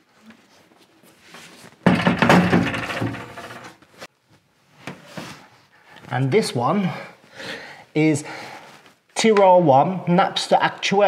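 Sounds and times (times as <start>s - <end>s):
wooden cabinet knocking and creaking: 1.8s - 3.8s.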